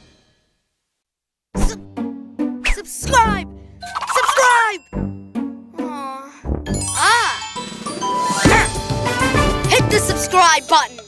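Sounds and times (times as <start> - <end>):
ringing chime: 6.7 - 8.5.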